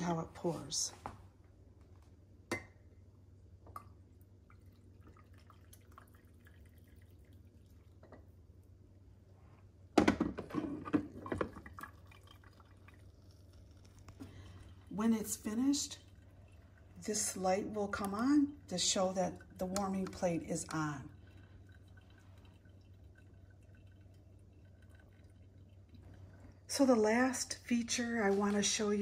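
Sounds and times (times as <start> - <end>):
coffee pouring into mug: 3.6 - 9.0, 10.0 - 28.7.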